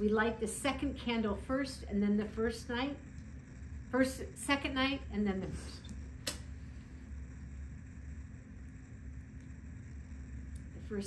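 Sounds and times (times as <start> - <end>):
low room hum: 0.0 - 11.0
sharp click: 6.2 - 6.5.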